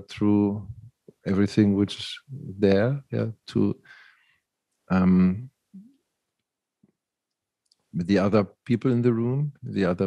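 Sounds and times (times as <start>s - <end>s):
person speaking: 0.0s - 3.9s, 4.9s - 5.9s, 7.9s - 10.0s.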